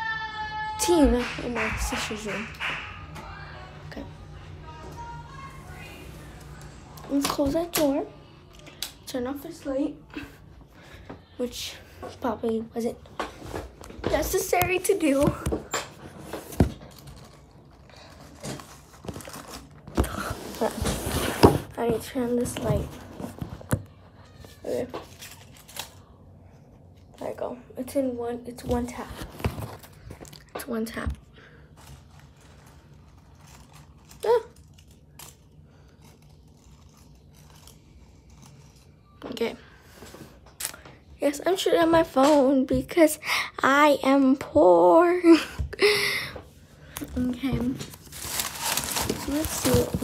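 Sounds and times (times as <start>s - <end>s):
artificial vines rustling and clicking: 31.8s - 39.3s.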